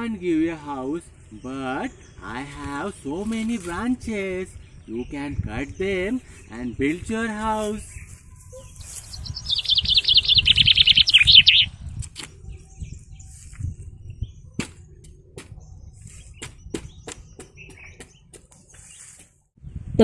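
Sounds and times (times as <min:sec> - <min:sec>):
bird chattering call: 0:08.5 - 0:11.7.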